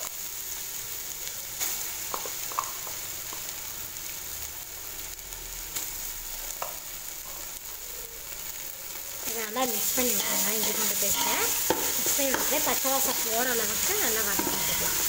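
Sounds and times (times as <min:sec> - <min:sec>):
food sizzling in hot oil: 0:00.0 - 0:15.0.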